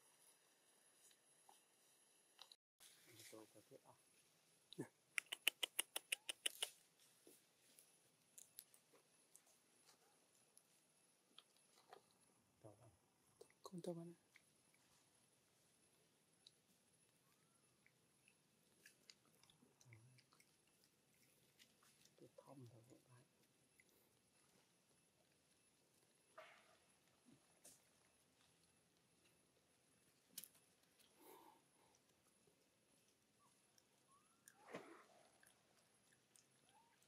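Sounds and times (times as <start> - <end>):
faint clicks: 5.1 - 6.8.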